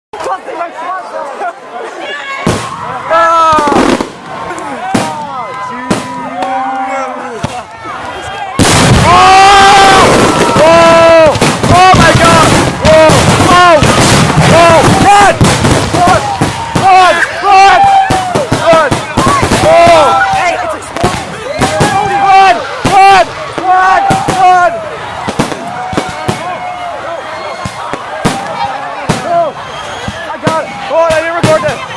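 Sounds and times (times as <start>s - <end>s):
fireworks bangs and crackles: 2.4s - 31.9s
high firework wails: 2.4s - 31.9s.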